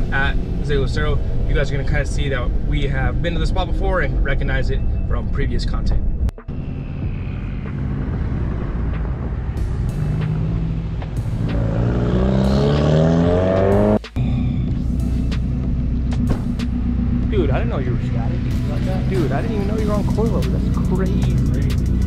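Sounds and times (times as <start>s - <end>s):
low engine hum: 0.0s - 22.0s
truck engine accelerating: 6.1s - 22.0s.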